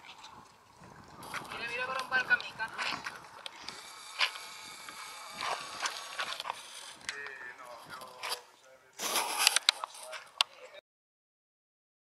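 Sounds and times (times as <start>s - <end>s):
indistinct voices talking: 1.4s - 10.8s.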